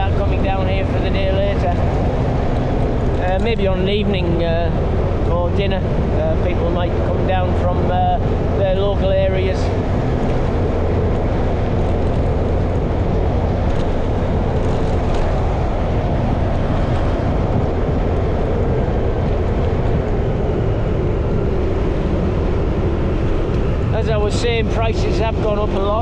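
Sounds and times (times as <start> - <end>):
motorbike engine running: 0.0 - 26.0
wind and road noise: 0.0 - 26.0.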